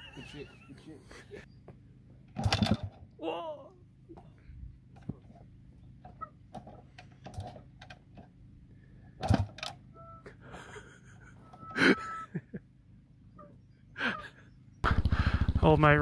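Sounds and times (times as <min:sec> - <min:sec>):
short engine bursts: 0:14.8 - 0:16.0.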